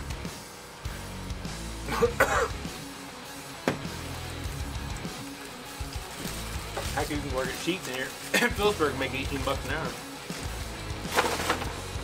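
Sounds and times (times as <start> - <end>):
background music: 0.0 - 12.0
person coughing: 1.9 - 2.7, 8.3 - 8.7.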